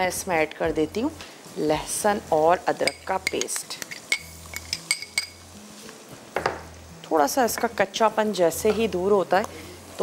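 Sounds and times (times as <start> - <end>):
metal spoon clinking glass bowl: 2.8 - 5.4.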